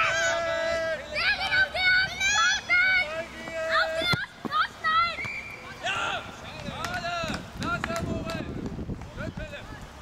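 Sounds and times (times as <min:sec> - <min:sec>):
children shouting: 0:00.0 - 0:06.2.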